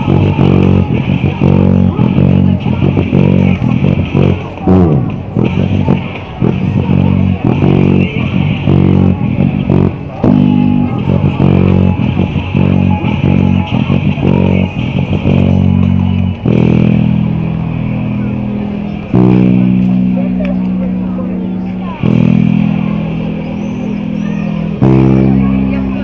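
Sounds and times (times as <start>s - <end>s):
electric bass rock line: 0.0s - 26.0s.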